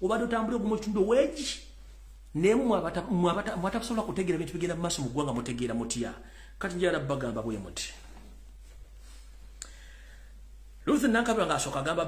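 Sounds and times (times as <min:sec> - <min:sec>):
man talking: 0:00.0 - 0:08.2, 0:10.8 - 0:12.0.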